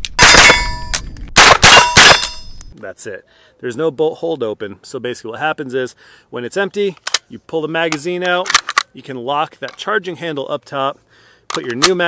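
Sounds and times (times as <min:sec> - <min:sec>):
gunshots with metallic ringing: 0:00.2 - 0:02.6.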